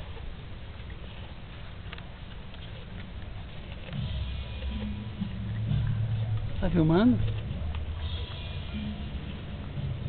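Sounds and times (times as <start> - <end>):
dog chewing watermelon: 0.0 - 10.0.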